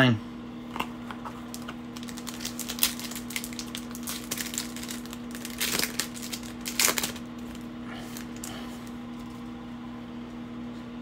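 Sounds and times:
steady low hum: 0:00.0 - 0:11.0
foil wrappers crinkling: 0:00.8 - 0:09.4.

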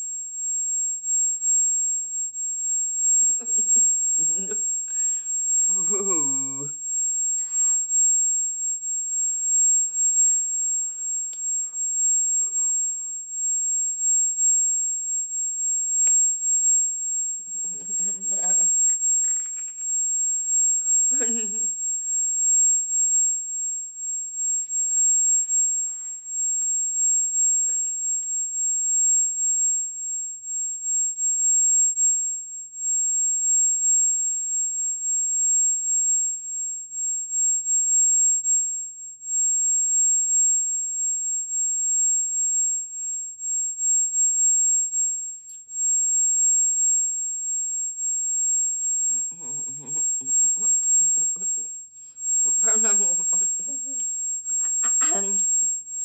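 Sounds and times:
high-pitched electronic whine: 0:01.2 - 0:14.8, 0:15.9 - 0:30.5, 0:48.7 - 0:56.0
faint voice: 0:49.3 - 0:51.6.

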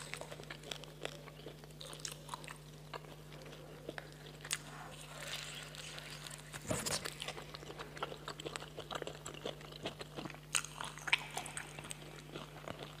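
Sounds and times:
chewing and crunching: 0:00.0 - 0:13.0
steady low hum: 0:00.0 - 0:13.0.

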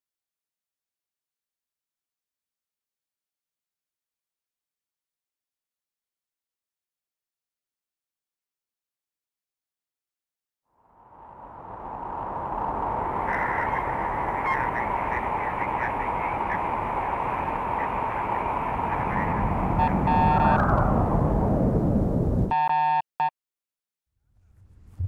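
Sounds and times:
rumble with falling whine: 0:10.7 - 0:22.5
spaceship rushing hum: 0:10.7 - 0:22.5
harsh electronic buzz: 0:14.3 - 0:20.6, 0:22.5 - 0:23.0.

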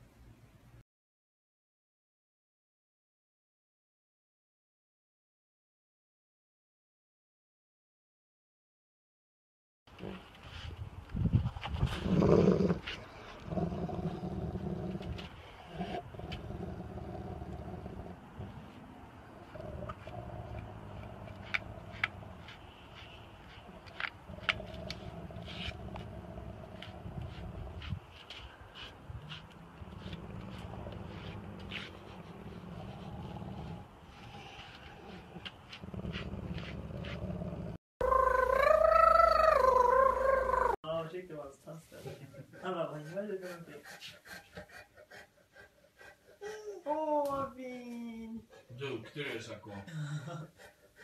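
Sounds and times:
dog growling: 0:11.9 - 0:18.7, 0:19.3 - 0:22.5, 0:23.6 - 0:28.0, 0:29.3 - 0:40.8
small dog whining howl: 0:38.0 - 0:40.8.

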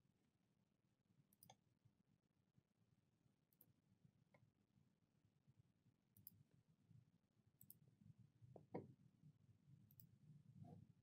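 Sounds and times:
computer mouse clicks: 0:01.3 - 0:01.6, 0:03.5 - 0:03.8, 0:06.2 - 0:06.4, 0:07.6 - 0:07.8, 0:09.9 - 0:10.2.

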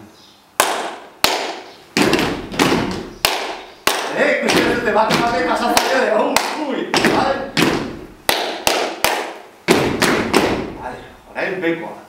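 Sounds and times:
handclaps: 0:00.6 - 0:10.6
foot stamps on a hard floor: 0:02.0 - 0:03.4, 0:04.5 - 0:05.6, 0:07.0 - 0:08.0, 0:09.7 - 0:10.8.

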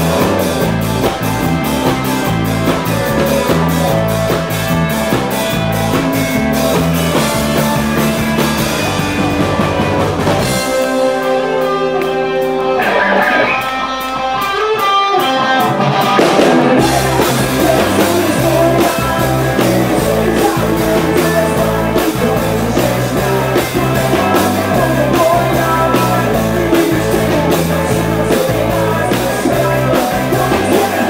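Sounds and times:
drums: 0:00.0 - 0:31.0
electric guitars ringing: 0:00.0 - 0:31.0
rock band playing: 0:00.0 - 0:31.0.

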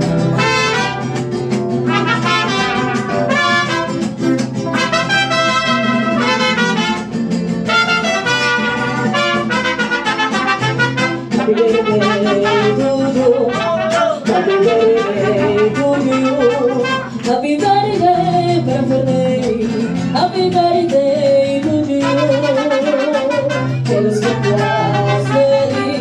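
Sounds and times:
strummed guitars: 0:00.0 - 0:26.0
person singing with vibrato: 0:00.3 - 0:07.0, 0:07.7 - 0:26.0
trumpets playing melody: 0:00.4 - 0:04.1, 0:04.7 - 0:17.1, 0:22.1 - 0:26.0.

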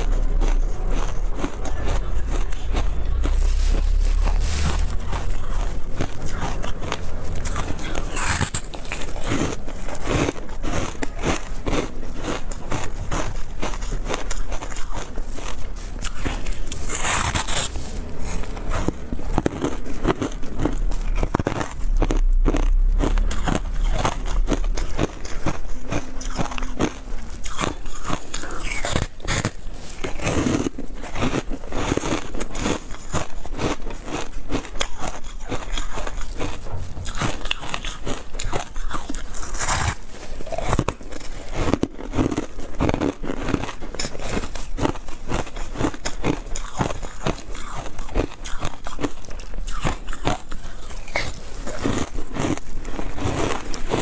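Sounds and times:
chewing crunchy ice: 0:00.0 - 0:54.0.

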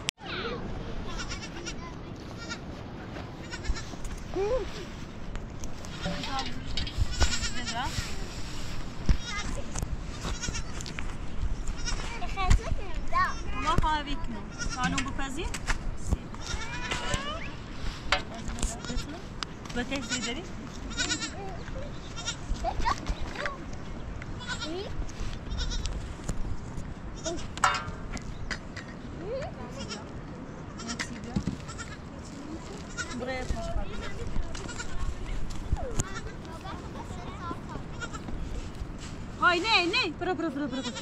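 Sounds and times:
goats bleating: 0:02.4 - 0:02.6, 0:20.0 - 0:21.4.

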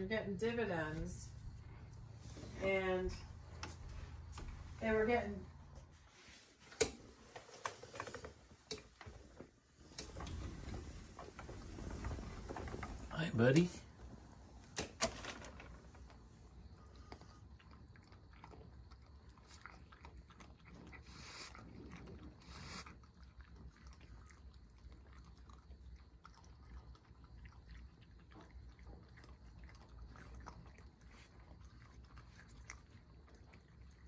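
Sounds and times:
raccoons chewing food: 0:00.7 - 0:14.8, 0:15.8 - 0:34.0.

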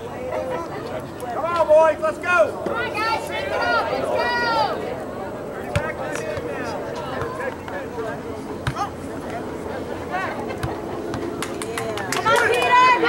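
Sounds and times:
outdoor background noise: 0:00.0 - 0:13.0
shouts and chatter of people: 0:00.0 - 0:13.0.

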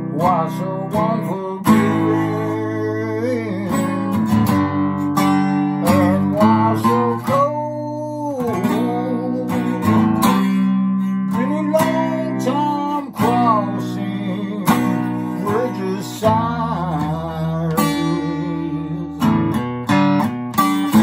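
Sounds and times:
man singing: 0:00.0 - 0:20.0, 0:20.6 - 0:21.0
acoustic guitar strummed: 0:00.0 - 0:21.0.

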